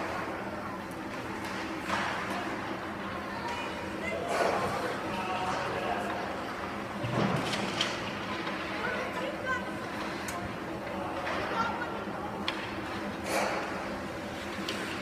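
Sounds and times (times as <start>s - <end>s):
steady hum: 0.0s - 15.0s
hockey sticks clacking on puck: 1.1s - 2.6s, 12.4s - 15.0s.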